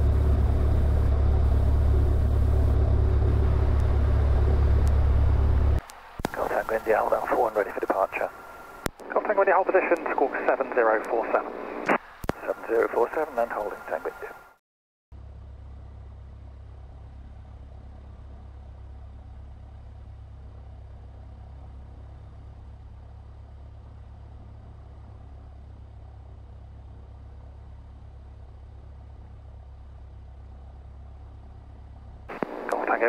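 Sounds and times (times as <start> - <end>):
aircraft engine droning: 0.0 - 14.5, 15.2 - 33.0
radio transmission voice: 6.2 - 14.5, 32.3 - 33.0.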